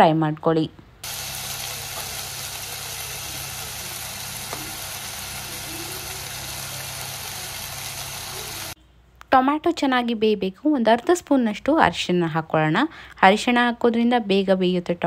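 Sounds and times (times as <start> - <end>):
vegetables sizzling in a pot: 1.0 - 8.8.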